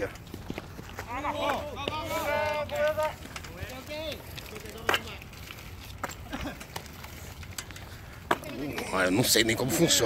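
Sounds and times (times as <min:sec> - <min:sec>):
players shouting: 0:01.0 - 0:05.2.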